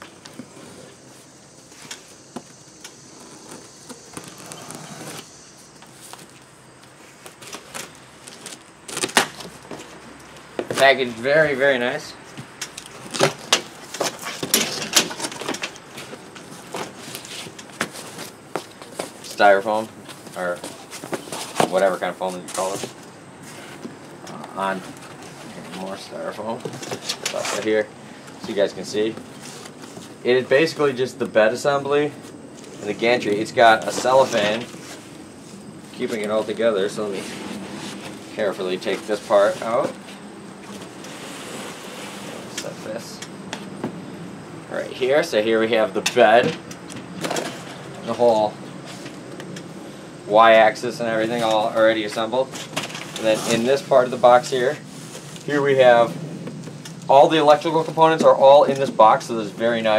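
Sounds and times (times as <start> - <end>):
foam packaging rustling: 3.1 - 10.0
foam sheet handled: 32.7 - 35.2.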